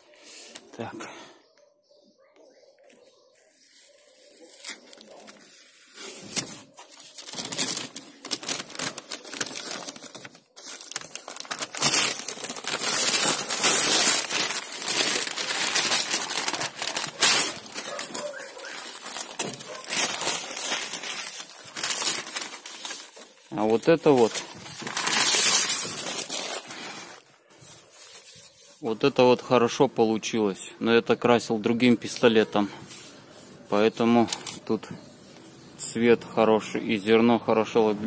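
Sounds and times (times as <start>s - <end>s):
paper crumpling: 3.4s - 28.9s, 32.8s - 35.6s
paper and tape tearing off: 3.7s - 28.7s.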